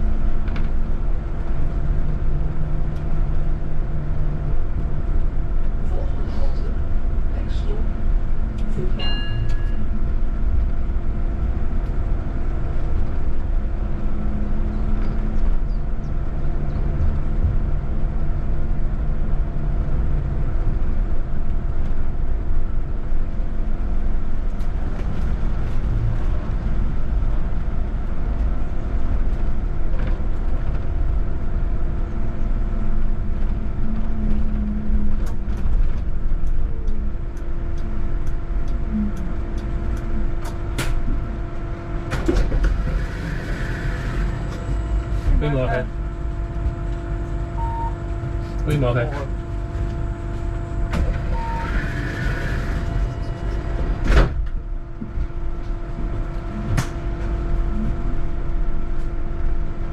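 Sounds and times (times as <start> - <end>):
road and tyre rumble: 0.0 - 59.9
steady electric hum: 43.0 - 59.9.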